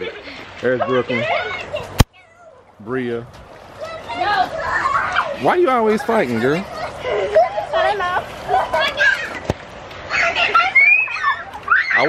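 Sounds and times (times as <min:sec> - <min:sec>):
children shouting and squealing: 0:00.0 - 0:02.8, 0:03.7 - 0:12.0.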